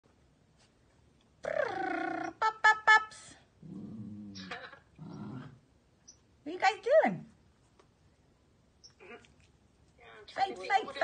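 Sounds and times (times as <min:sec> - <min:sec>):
puppy low growls: 0:03.6 - 0:05.6.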